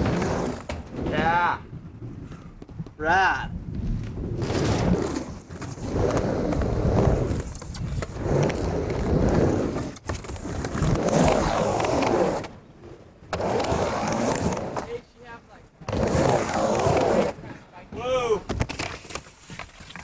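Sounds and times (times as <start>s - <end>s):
skateboard wheels rolling on pavement: 0.0s - 20.0s
skateboard clacking and slapping: 18.4s - 20.0s.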